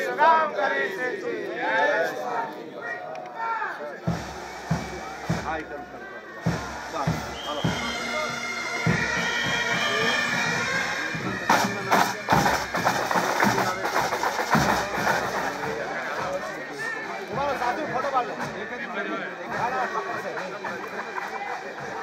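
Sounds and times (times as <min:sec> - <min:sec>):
crowd voices: 0:00.0 - 0:22.0
band music with drum beats: 0:04.0 - 0:22.0.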